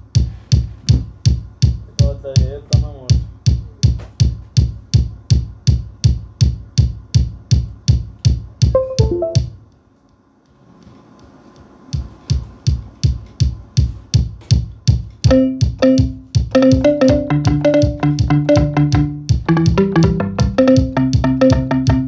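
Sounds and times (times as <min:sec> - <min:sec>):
drum machine beat: 0:00.0 - 0:09.7, 0:11.9 - 0:22.0
synth notes: 0:08.8 - 0:09.5, 0:15.3 - 0:21.9.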